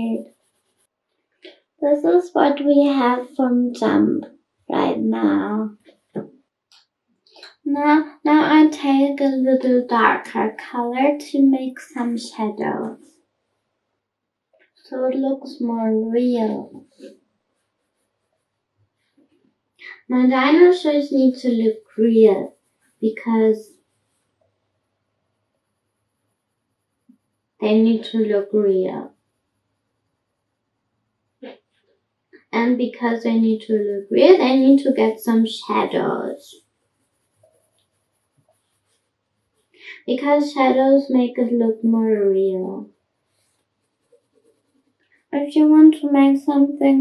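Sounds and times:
faint pencil scratching on paper: 0.1 - 0.9, 15.9 - 18.5, 20.0 - 24.3, 33.6 - 40.8, 43.3 - 47.0
pencil scratching on paper: 0.1 - 0.9, 33.8 - 39.7, 43.3 - 44.9.

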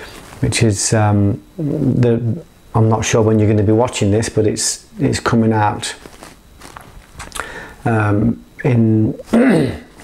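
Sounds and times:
man talking: 0.4 - 6.0, 7.8 - 9.8.

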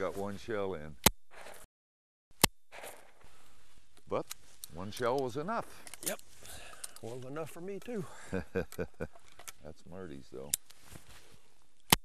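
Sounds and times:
shotgun shots: 2.7 - 3.2.

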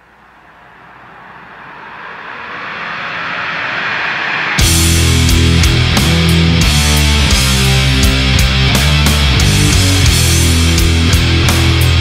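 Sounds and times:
whooshing noise: 0.0 - 8.3.

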